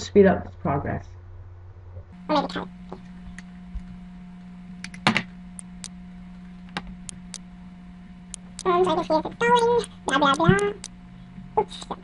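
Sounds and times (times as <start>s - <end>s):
steady low hum: 0.0s - 12.0s
computer keys clicking: 9.8s - 11.0s.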